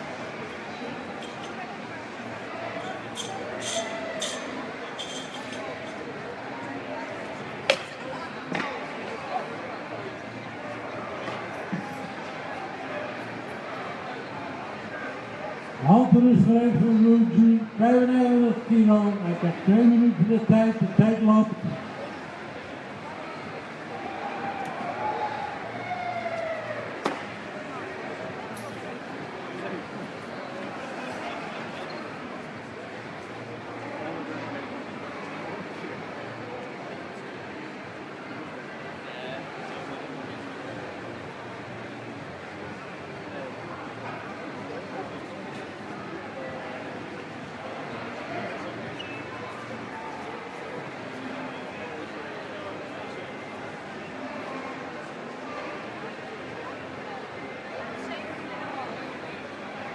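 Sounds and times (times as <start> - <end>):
murmur of indistinct voices: 0.0 - 59.9.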